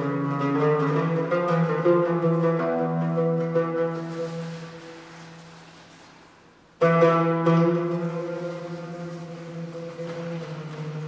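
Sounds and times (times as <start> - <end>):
oud playing slow improvisation: 0.0 - 11.0.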